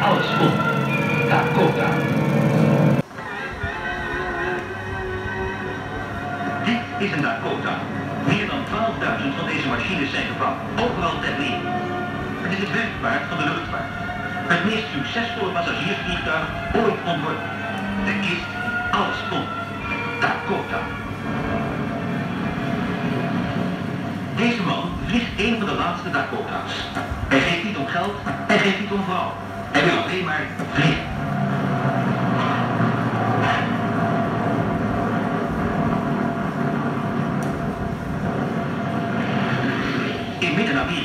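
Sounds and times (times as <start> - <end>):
twin piston aircraft engines droning: 0.0 - 3.1, 3.7 - 41.0
film soundtrack music: 0.0 - 41.0.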